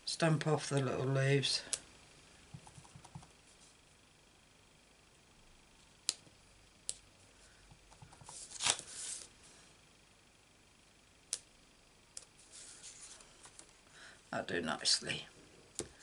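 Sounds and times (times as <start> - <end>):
paper sliding and rustling: 8.3 - 9.3, 12.4 - 13.3.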